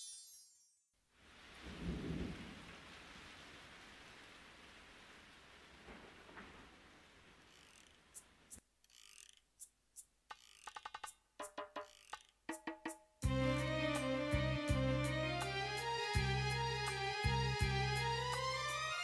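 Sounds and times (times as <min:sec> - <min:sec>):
rain falling: 0:01.1 - 0:08.5, 0:13.3 - 0:19.0
thunder rolling: 0:01.5 - 0:03.6, 0:05.6 - 0:07.4
music: 0:10.7 - 0:11.9, 0:12.5 - 0:19.0.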